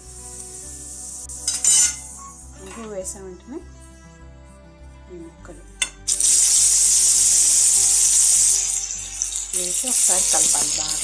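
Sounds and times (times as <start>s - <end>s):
hot oil sizzling in a pan: 0.0s - 2.7s, 6.1s - 11.0s
background music: 0.0s - 11.0s.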